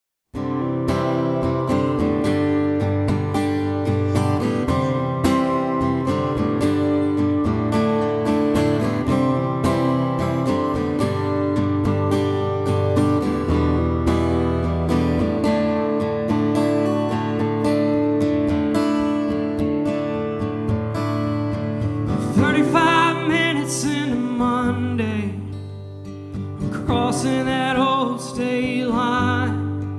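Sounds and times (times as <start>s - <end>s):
acoustic guitar strumming chords: 0.4s - 29.9s.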